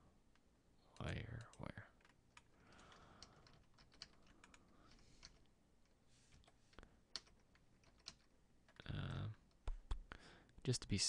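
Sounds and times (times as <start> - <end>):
computer keyboard and mouse clicking: 0.3 - 10.1.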